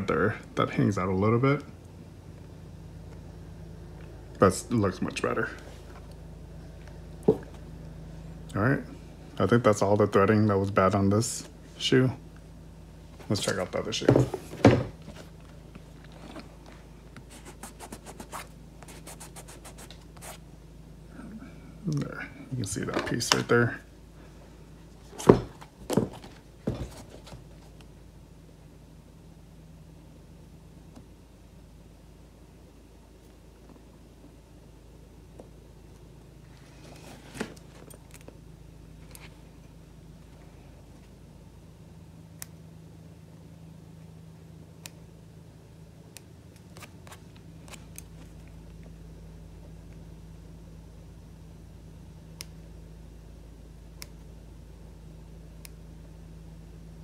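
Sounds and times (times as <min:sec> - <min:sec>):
steady low hum: 0:00.0 - 0:57.0.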